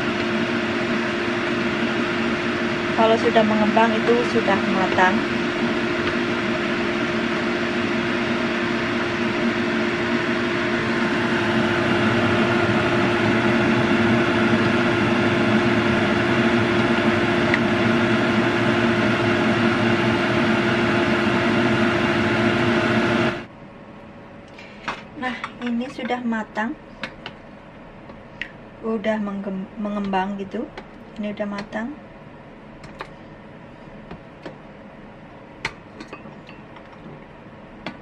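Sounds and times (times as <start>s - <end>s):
kitchen fan whirring: 0.0s - 38.0s.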